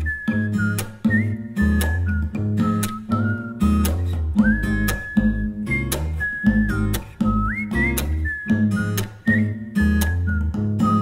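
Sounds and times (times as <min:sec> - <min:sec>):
indie pop band music: 0:00.0 - 0:11.0
whistled melody: 0:00.0 - 0:11.0.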